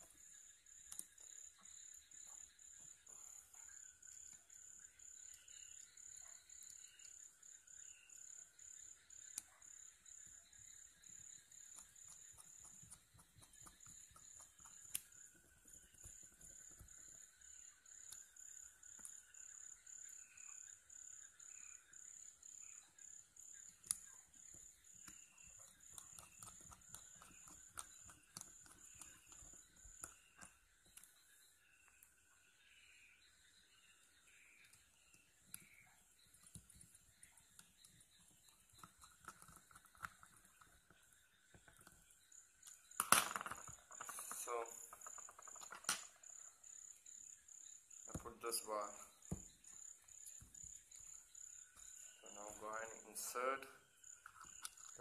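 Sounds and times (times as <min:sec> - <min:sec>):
cricket chirping: 0:00.0 - 0:55.0.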